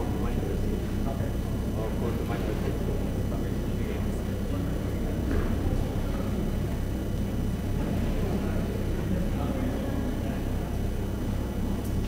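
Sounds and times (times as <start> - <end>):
faint indistinct talking: 0.0 - 12.0
steady low hum: 0.0 - 12.0.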